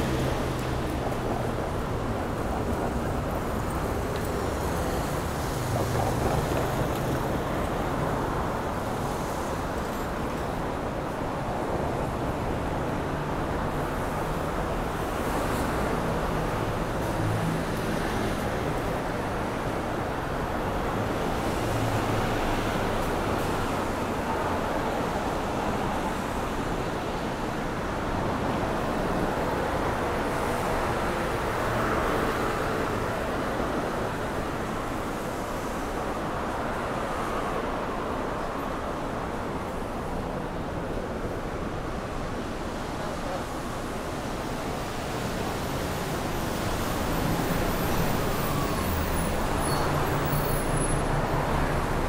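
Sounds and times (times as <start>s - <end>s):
cars passing on street: 0.0s - 52.0s.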